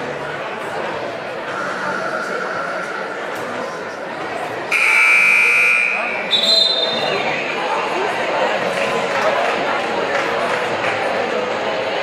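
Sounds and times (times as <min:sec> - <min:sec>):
crowd chatter: 0:00.0 - 0:12.0
scoreboard buzzer: 0:04.7 - 0:07.0.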